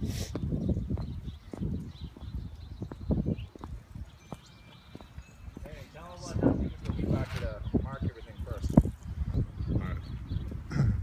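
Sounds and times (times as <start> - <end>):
footsteps on asphalt and grass: 0.0 - 7.8.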